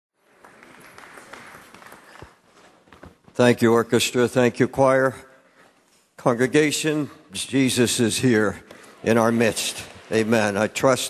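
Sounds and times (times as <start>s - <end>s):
congregation applauding: 0.2s - 2.5s.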